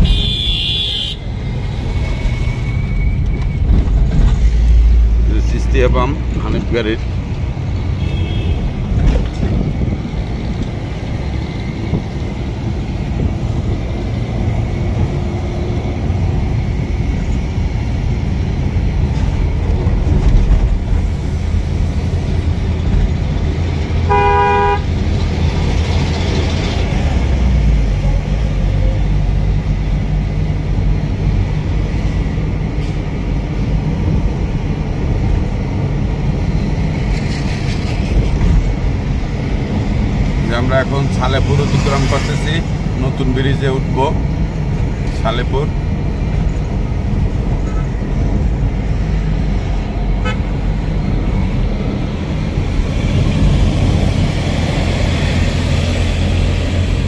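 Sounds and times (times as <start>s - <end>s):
vehicle horn toot: 0.0s - 1.2s, 8.0s - 8.6s, 24.1s - 24.9s, 50.2s - 50.4s
engine and road rumble: 0.0s - 57.0s.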